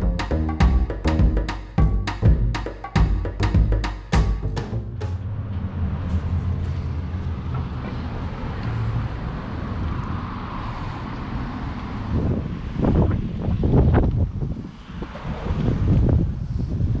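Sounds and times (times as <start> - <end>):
road traffic rumble: 0.0 - 17.0
wind buffeting microphone: 9.3 - 17.0.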